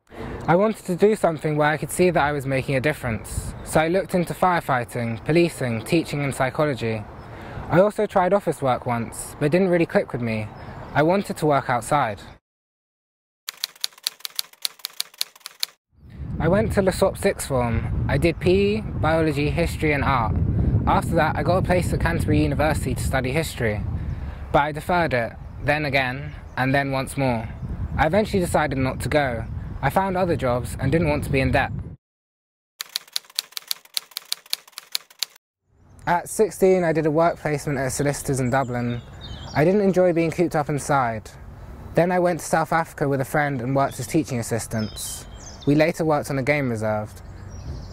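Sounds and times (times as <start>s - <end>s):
typewriter keystroke clicks: 13.5s - 15.8s, 32.8s - 35.4s.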